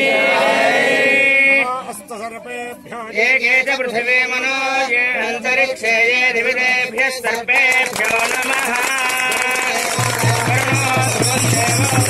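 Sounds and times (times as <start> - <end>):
priest chanting: 1.2 - 12.0.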